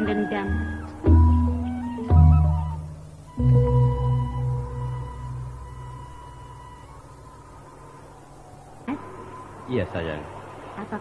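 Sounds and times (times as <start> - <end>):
faint held music tones: 0.0 - 11.0
stage recording hiss and hum: 0.0 - 11.0.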